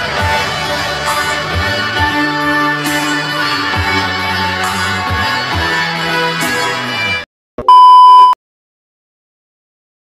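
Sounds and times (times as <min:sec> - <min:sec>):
music: 0:00.0 - 0:07.2
loud electronic beep: 0:07.6 - 0:08.4.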